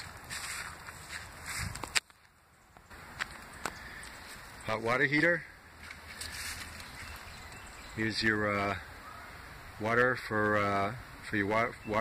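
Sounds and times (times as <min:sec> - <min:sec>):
footsteps on dirt: 0:00.0 - 0:02.3, 0:02.9 - 0:07.9.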